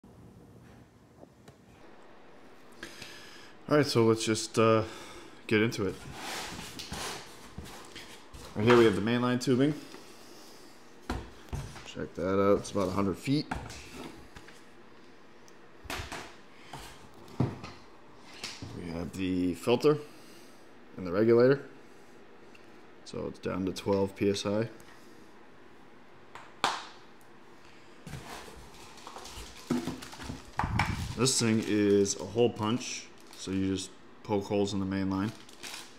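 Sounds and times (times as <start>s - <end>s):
cardboard packaging rustling: 28.1s - 33.6s, 35.1s - 35.9s.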